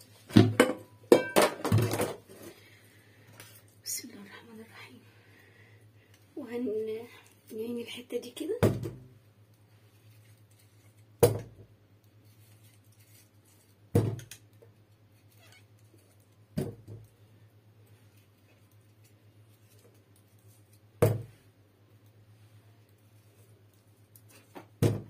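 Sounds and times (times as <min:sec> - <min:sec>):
tomatoes thudding into a pot: 0:24.6 - 0:25.0.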